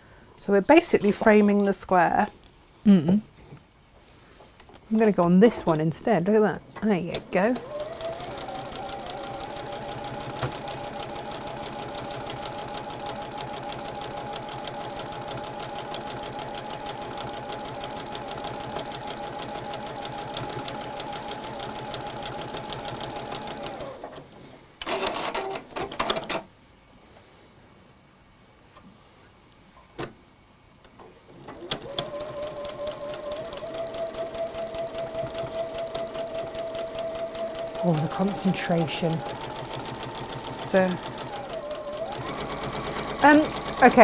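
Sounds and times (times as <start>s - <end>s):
sewing machine stitching: 7.1s - 24.2s, 24.8s - 26.4s, 31.3s - 44.0s.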